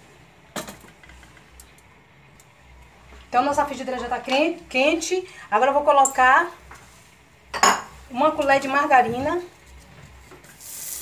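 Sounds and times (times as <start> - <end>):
low steady hum: 0.0 - 10.4.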